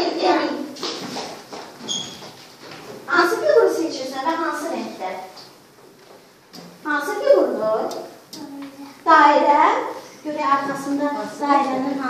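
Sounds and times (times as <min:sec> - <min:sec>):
children shifting at desks: 0:00.7 - 0:03.1, 0:05.3 - 0:06.9, 0:10.0 - 0:12.0
short high squeak: 0:01.9 - 0:02.2.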